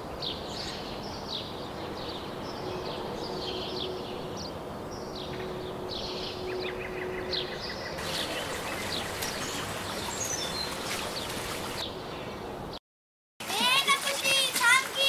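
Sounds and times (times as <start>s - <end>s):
birds chirping: 0.2s - 12.8s.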